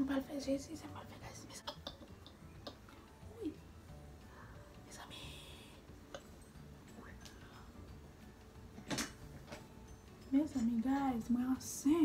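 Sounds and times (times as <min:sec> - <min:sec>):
woman whispering: 0:04.9 - 0:05.8.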